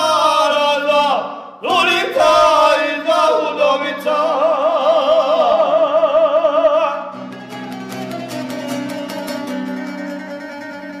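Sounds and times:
plucked folk lute: 7.1s - 11.0s.

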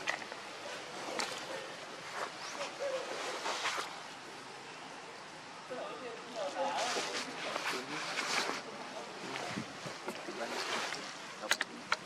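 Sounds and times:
steady outdoor hiss: 0.0s - 12.0s.

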